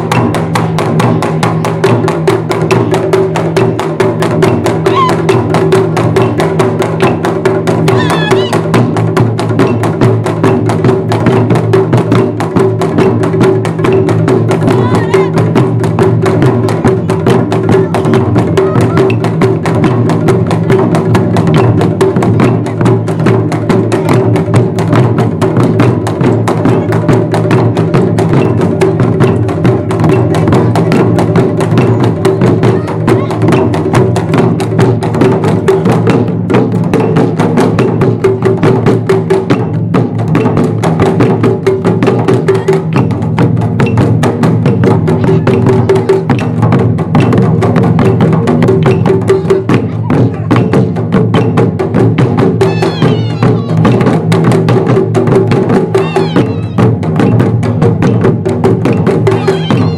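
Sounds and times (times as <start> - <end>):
large drums struck with sticks: 0.0 - 59.9.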